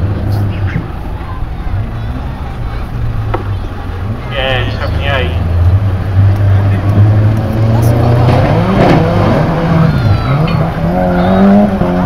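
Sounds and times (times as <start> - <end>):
race car engines droning: 0.0 - 12.0.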